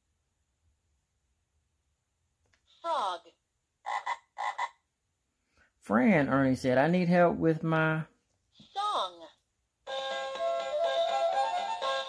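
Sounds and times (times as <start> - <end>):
electronic frog croaks: 3.8 - 4.8.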